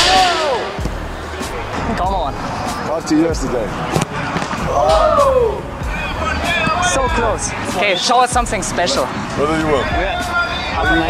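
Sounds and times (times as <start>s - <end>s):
music with low beat: 0.0s - 7.7s, 8.3s - 11.0s.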